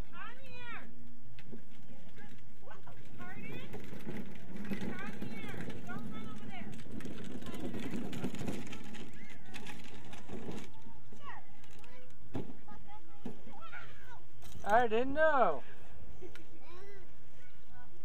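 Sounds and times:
children calling and chattering: 2.0s - 18.0s.

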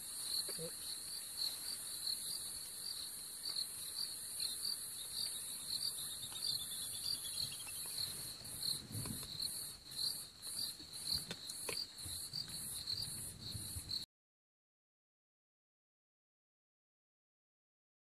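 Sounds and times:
crickets chirping: 0.0s - 14.0s.

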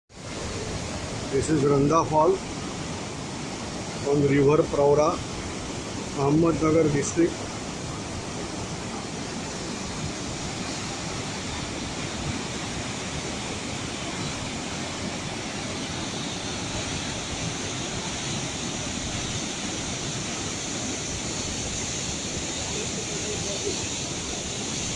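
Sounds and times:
waterfall rushing: 0.2s - 24.9s.

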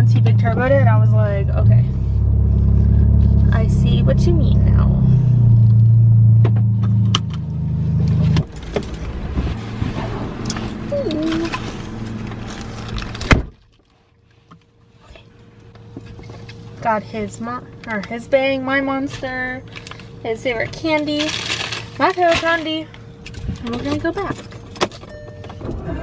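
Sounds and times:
car engine running at low revs: 0.0s - 26.0s.

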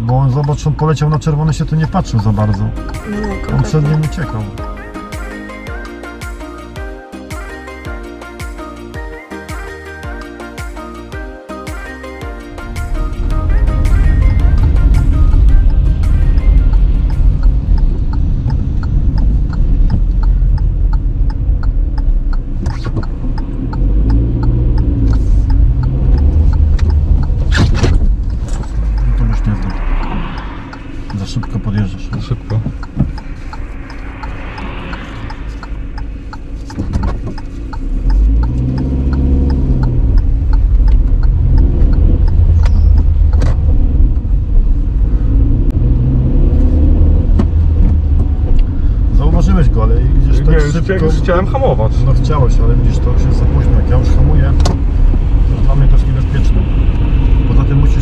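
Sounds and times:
road rumble: 0.0s - 9.0s, 9.6s - 58.0s
car engine idling and revving: 0.0s - 58.0s.

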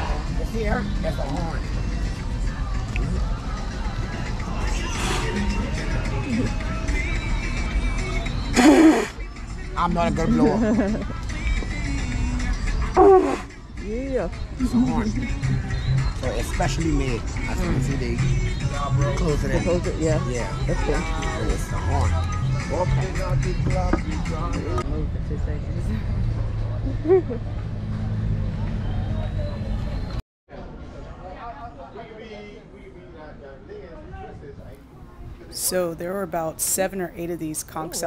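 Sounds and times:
faint voices: 0.0s - 38.0s
conch shell horn blowing: 13.0s - 13.5s.

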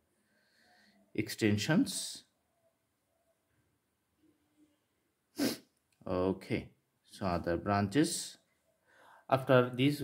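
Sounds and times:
sharp burst of breath: 5.4s - 5.7s.

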